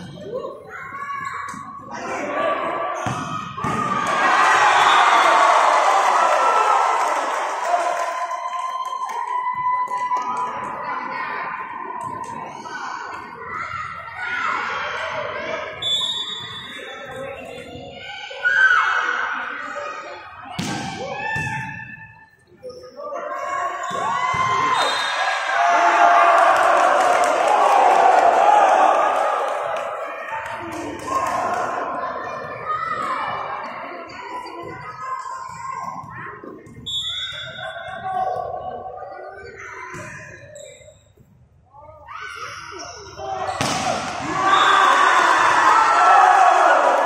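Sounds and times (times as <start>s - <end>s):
players shouting in gym hall: 0.0s - 36.3s, 41.8s - 47.0s
volleyball being struck: 43.6s - 44.4s.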